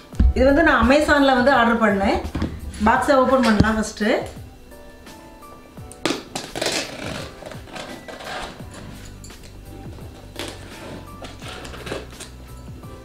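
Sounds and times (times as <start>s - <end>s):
background music: 0.0s - 13.0s
blade slitting packing tape: 6.0s - 9.6s, 10.2s - 12.4s.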